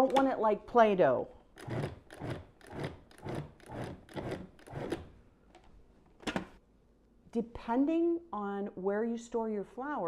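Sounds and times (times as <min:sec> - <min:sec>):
food processor pulsing: 0:01.6 - 0:05.1.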